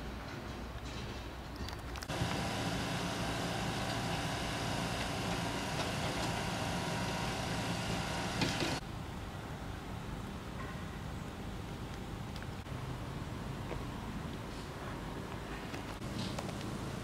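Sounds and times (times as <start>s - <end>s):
rally car engine idling: 2.1s - 8.8s.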